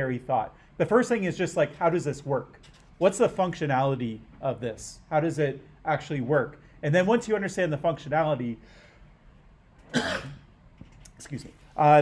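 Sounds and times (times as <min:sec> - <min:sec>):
man coughing: 0:09.9 - 0:10.5.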